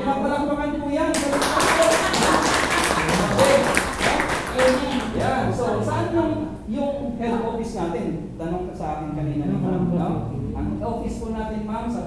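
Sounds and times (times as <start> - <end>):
voices: 0.0 - 12.0
audience applauding: 1.1 - 5.6.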